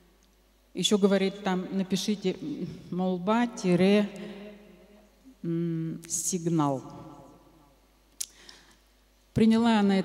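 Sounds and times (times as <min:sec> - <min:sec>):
woman speaking into microphone: 0:00.8 - 0:04.3, 0:05.4 - 0:07.0, 0:09.4 - 0:10.0.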